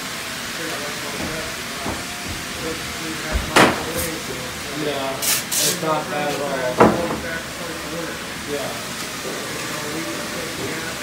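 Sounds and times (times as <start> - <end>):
faint voices: 0.5 - 11.0
spray adhesive hissing: 0.9 - 6.6.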